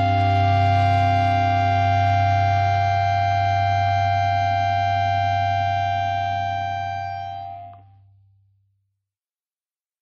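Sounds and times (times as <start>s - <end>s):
organ-like keyboard chord: 0.0s - 7.9s.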